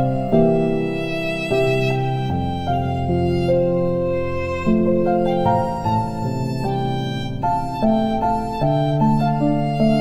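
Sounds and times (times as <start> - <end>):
slow instrumental relaxation music: 0.0 - 10.0.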